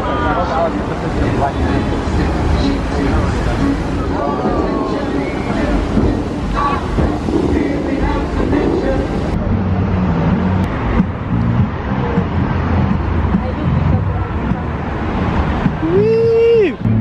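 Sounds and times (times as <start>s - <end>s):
fountain jets spraying: 0.0s - 16.8s
crowd chatter: 0.0s - 17.0s
onlookers' voices: 0.0s - 17.0s
wind on microphone: 0.0s - 17.0s.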